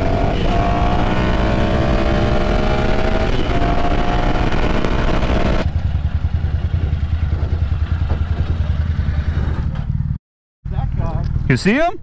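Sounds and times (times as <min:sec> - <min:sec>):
motorcycle engine idling: 0:05.6 - 0:10.2.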